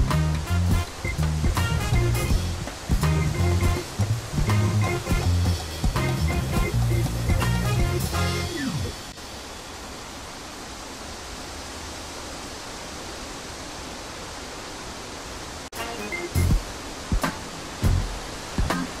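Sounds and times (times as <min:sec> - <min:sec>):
water rushing: 0:00.0 - 0:19.0.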